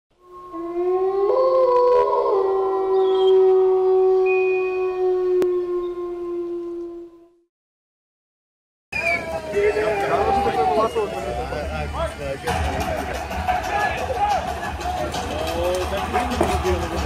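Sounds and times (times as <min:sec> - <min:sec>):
wolf howling: 0:00.2 - 0:07.4, 0:09.1 - 0:11.0.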